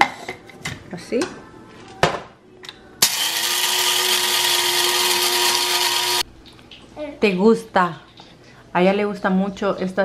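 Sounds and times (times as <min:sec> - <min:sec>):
coffee grinder whirring: 0:03.0 - 0:06.3.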